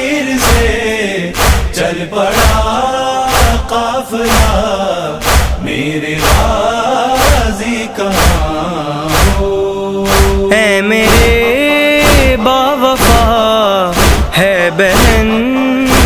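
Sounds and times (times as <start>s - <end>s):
chorus singing: 0.0s - 16.0s
man chanting a lament: 0.0s - 16.0s
deep percussive beat: 0.4s - 16.0s.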